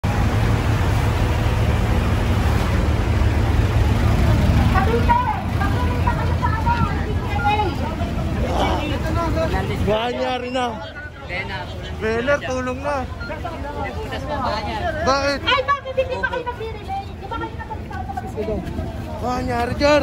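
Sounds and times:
fire truck engine rumbling: 0:00.0 - 0:20.0
crowd voices: 0:01.2 - 0:20.0.

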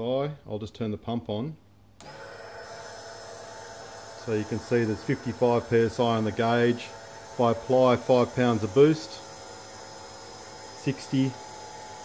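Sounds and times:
electric fuel pump whining: 0:02.0 - 0:12.0.

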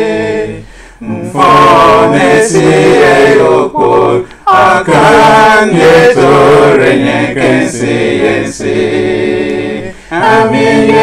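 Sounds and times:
male voices singing in harmony: 0:00.0 - 0:11.0.

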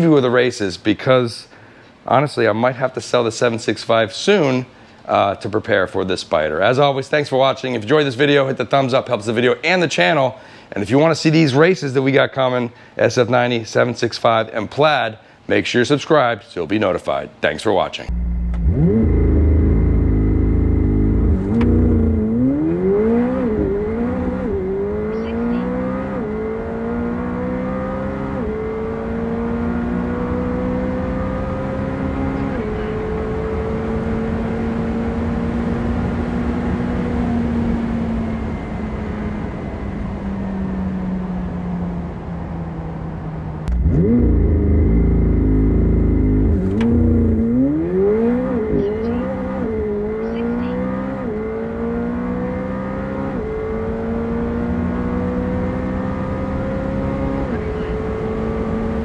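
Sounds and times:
wind and road noise: 0:00.0 - 0:59.0
car engine revving: 0:18.1 - 0:59.0.

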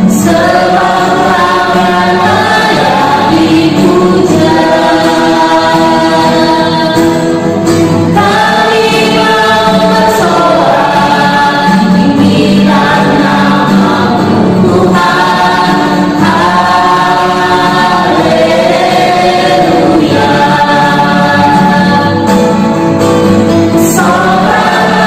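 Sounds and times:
group singing praise song: 0:00.0 - 0:25.0.

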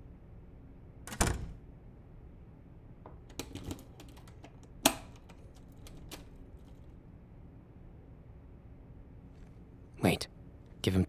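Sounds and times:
door closing with a thud: 0:01.1 - 0:01.6.

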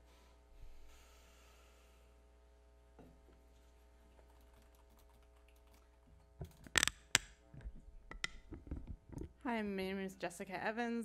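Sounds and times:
faint room hum: 0:00.0 - 0:11.0
sharp clicks and knocks: 0:06.4 - 0:09.4.

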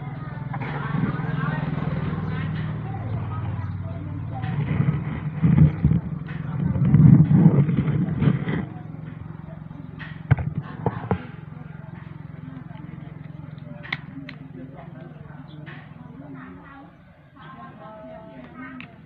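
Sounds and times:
steady low hum: 0:00.0 - 0:19.0
voices: 0:00.0 - 0:19.0.

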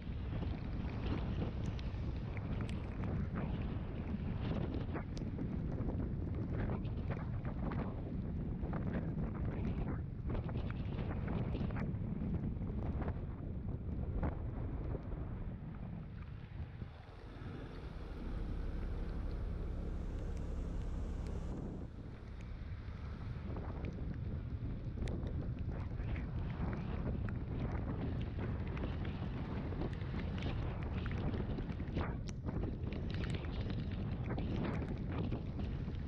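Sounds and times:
wind rushing over microphone: 0:00.0 - 0:36.0
scooter engine running: 0:16.7 - 0:23.6.

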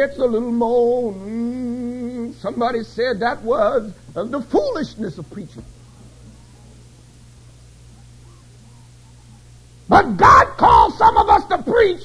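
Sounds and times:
low steady hum: 0:00.0 - 0:12.0
man preaching loudly: 0:02.4 - 0:05.6, 0:09.9 - 0:12.0
faint short pitched sounds: 0:05.6 - 0:09.8.

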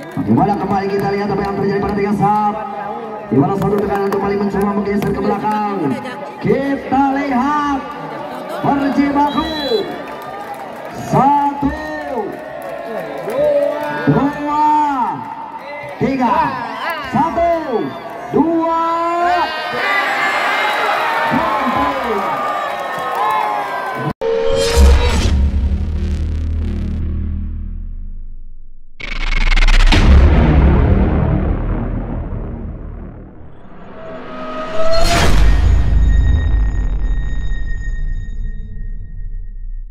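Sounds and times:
crowd noise: 0:00.0 - 0:24.1
cinematic music: 0:24.2 - 0:39.9
rising whoosh: 0:24.2 - 0:39.9
deep boom: 0:24.4 - 0:39.9.

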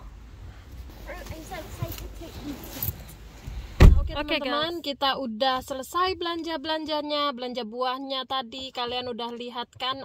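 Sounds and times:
car door shutting: 0:02.8 - 0:04.2.

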